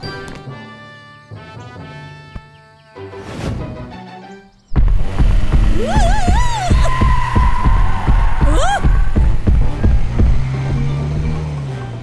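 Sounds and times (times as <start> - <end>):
background music: 0.0 - 12.0
cartoon bus engine drone: 4.8 - 12.0.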